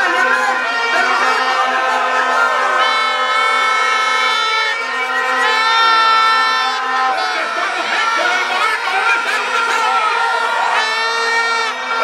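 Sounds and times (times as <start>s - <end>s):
crowd noise: 0.0s - 12.0s
plastic horns blown: 0.0s - 12.0s.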